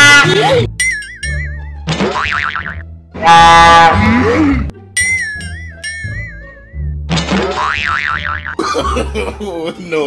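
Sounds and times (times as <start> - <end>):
cartoon boing sound effect: 7.1 - 8.6.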